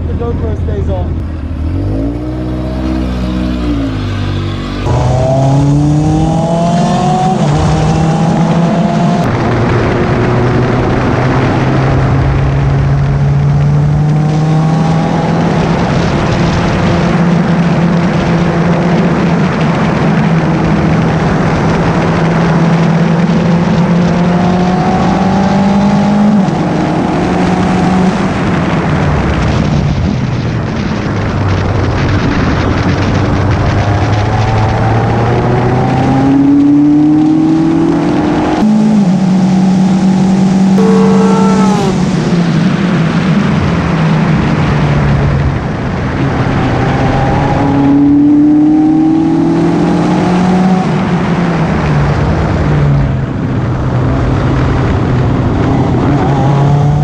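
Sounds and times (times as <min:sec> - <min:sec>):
wind noise: 0:00.0 - 0:57.0
race car engine at high revs: 0:01.2 - 0:29.7, 0:32.9 - 0:57.0.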